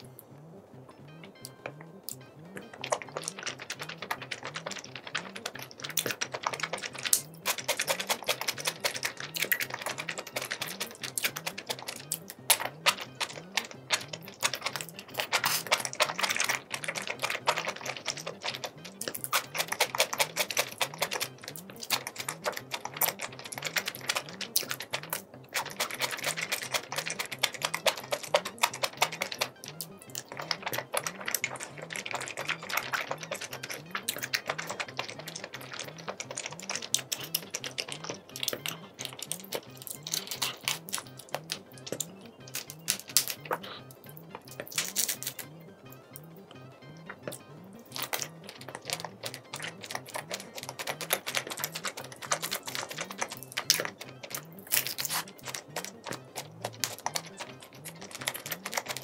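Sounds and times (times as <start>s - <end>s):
soft background music: 0.0s - 59.0s
crunching and chewing: 1.3s - 59.0s.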